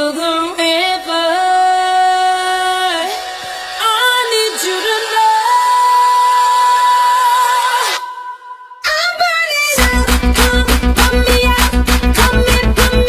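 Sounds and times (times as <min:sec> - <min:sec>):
pop song: 0:00.0 - 0:13.0.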